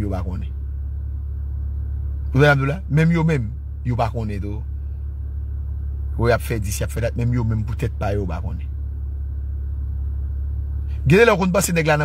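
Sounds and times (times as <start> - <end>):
man talking: 0.0 - 0.5, 2.4 - 4.7, 6.2 - 8.7, 11.0 - 12.0
car cabin rumble: 0.0 - 12.0.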